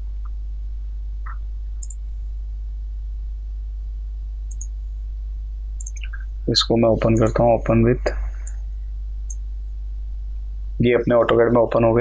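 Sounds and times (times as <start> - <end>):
low electrical hum: 0.0 - 12.0
computer mouse click: 1.3 - 2.0, 4.5 - 4.7, 5.8 - 6.2.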